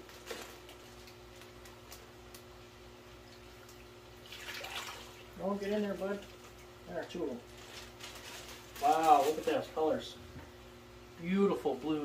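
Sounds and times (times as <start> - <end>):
plastic bag crinkling: 0.0 - 2.1, 7.4 - 10.0
steady low hum: 0.0 - 12.0.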